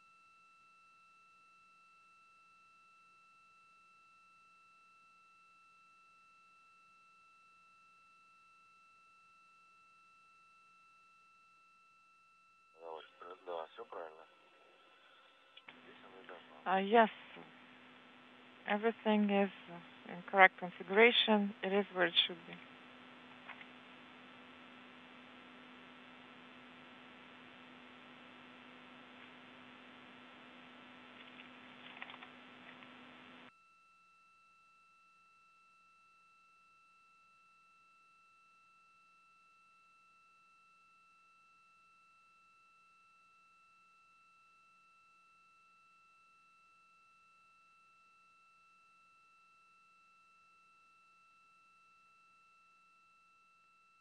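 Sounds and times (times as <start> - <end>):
faint high electronic tone: 0.0 - 44.3.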